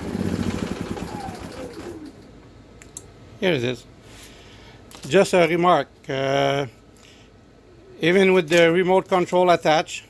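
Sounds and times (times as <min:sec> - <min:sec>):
generator engine shutting down: 0:00.0 - 0:02.3.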